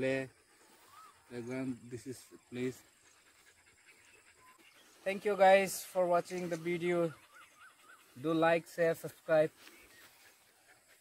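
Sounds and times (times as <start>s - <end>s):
dog panting: 0.0s - 11.0s.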